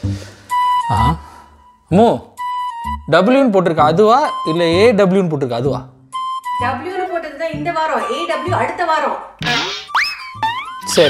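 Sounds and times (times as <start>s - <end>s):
music: 0.0s - 11.0s
cartoon pitch slide effects: 9.4s - 11.0s.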